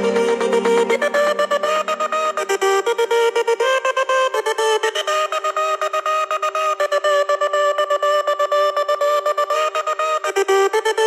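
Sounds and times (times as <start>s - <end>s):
pulsing high synth chord: 0.0s - 2.4s.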